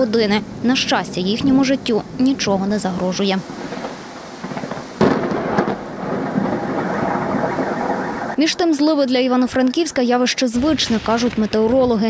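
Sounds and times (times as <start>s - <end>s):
thunder rumbling: 0.0s - 12.0s
thunder crack: 3.4s - 8.7s.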